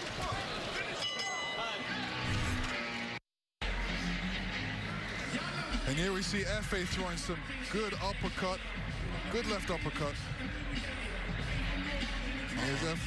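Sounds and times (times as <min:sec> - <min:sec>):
arena crowd noise: 0:00.0 - 0:13.0
boxing ring bell: 0:01.0 - 0:02.1.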